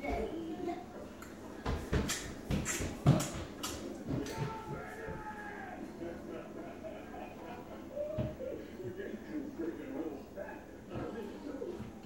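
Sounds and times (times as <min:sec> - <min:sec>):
stifled giggling: 0:05.8 - 0:09.2.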